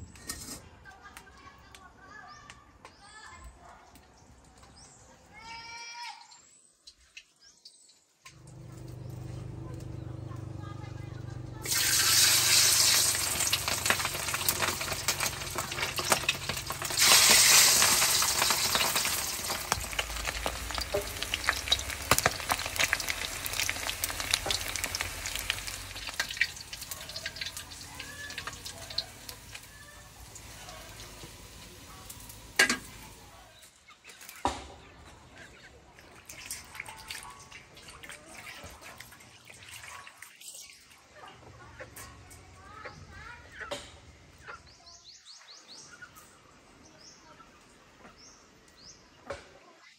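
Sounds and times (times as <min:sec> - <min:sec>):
crackling sizzle: 0:06.3 - 0:34.5.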